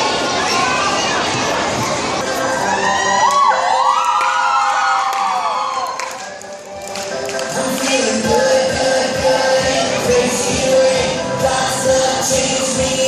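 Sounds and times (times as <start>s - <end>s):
children cheering and shouting: 0.0s - 6.3s
music: 1.3s - 13.0s.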